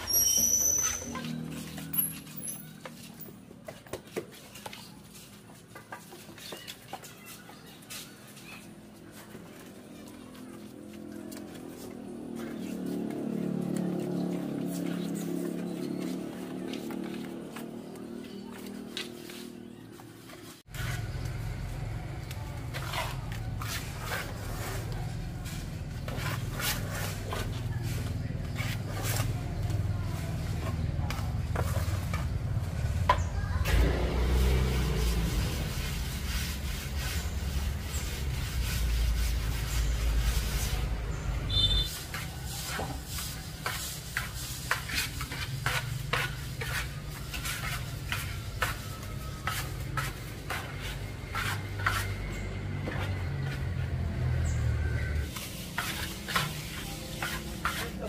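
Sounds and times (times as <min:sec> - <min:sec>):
trowel scraping and tapping: 0:41.7 - 0:53.9, 0:55.2 - 0:58.0.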